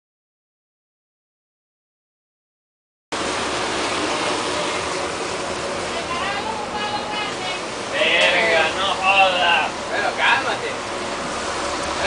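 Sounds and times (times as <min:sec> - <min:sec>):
steady rushing noise on boat: 0:03.1 - 0:12.0.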